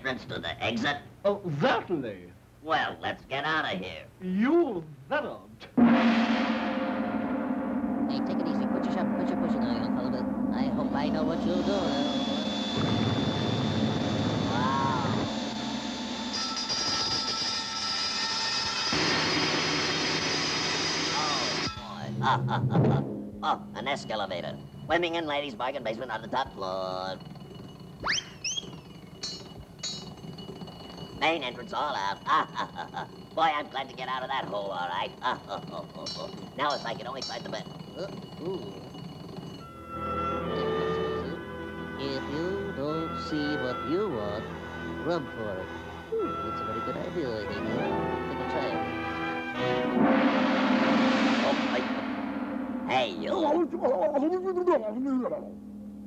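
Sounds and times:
gong ringing: 5.8s - 22.4s, 23.1s - 54.1s
low steady hum: 6.6s - 50.0s
high bell dings: 23.7s - 48.7s
whistle swoop: 28.0s - 30.0s.

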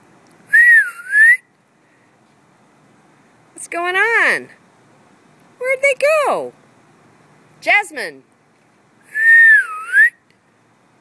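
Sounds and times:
person whistling: 0.5s - 1.4s, 9.1s - 10.2s.

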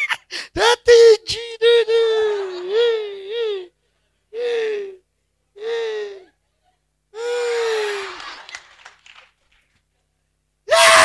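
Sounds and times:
man's high-pitched squealing laughter: 0.0s - 3.0s.

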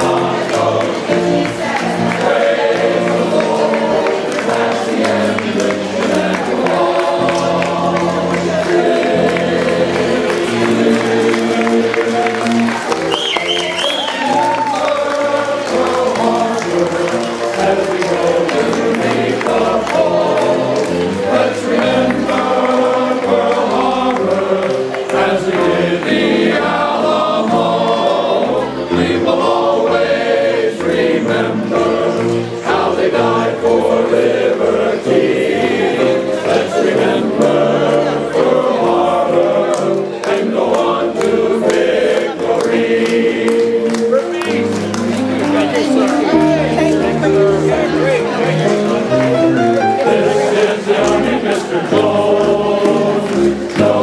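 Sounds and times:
men's chorus singing: 0.0s - 54.0s.

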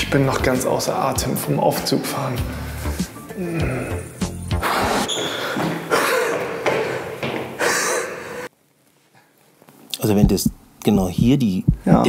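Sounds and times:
man panting: 2.5s - 8.5s.

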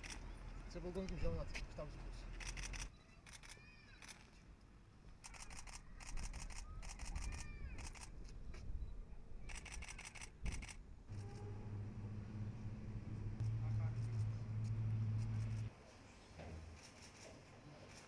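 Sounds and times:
rapid camera shutter clicks: 0.0s - 0.2s, 2.3s - 4.3s, 5.2s - 8.2s, 9.5s - 10.8s.

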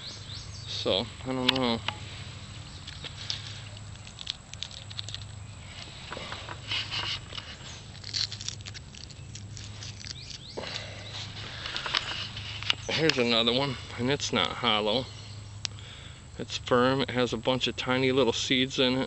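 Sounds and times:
plants rustling: 0.0s - 15.1s
crackles of stems and husks: 0.7s - 14.1s.

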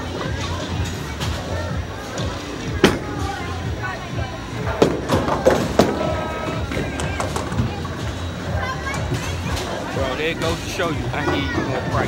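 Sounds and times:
chatter: 0.0s - 12.0s
music: 0.0s - 12.0s.

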